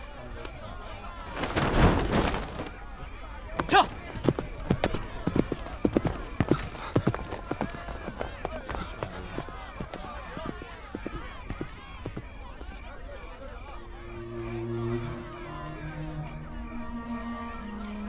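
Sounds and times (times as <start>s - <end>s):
murmur of voices: 0.0s - 18.0s
horse hoofbeats clattering: 3.6s - 13.3s.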